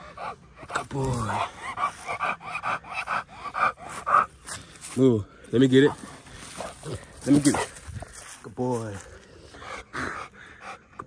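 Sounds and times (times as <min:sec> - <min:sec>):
dog panting hard: 0:00.0 - 0:04.7, 0:05.8 - 0:08.1, 0:09.5 - 0:11.0.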